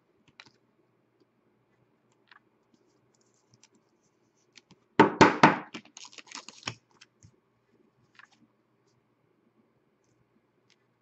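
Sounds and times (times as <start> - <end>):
plastic card sleeve crinkling: 5.7 - 7.3.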